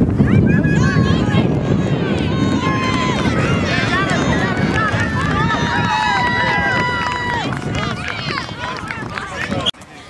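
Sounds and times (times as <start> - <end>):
spectators shouting and cheering: 0.0 - 10.0.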